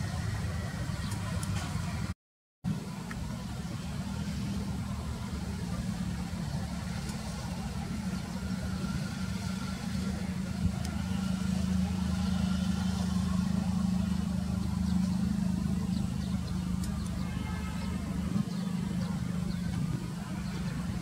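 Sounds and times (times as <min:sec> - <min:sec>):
low mechanical rumble: 0:00.0 - 0:21.0.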